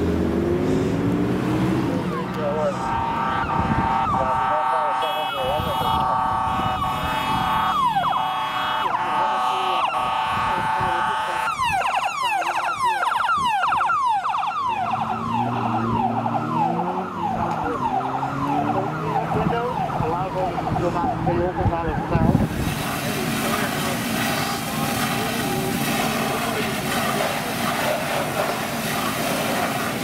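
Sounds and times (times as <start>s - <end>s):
electronic siren: 2.1s - 22.4s.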